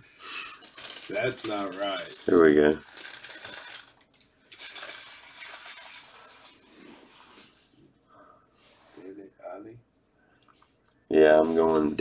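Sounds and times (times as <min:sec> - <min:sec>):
trading cards rustling and scraping: 0:00.6 - 0:04.0.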